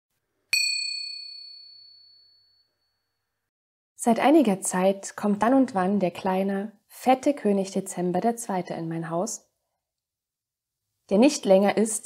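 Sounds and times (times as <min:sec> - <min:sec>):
high bell-like chime: 0:00.5 - 0:03.2.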